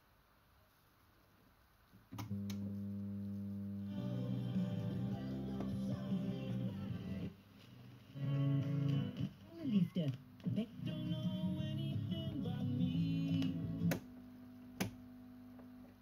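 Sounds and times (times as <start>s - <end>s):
guitar music from radio: 3.9s - 14.0s.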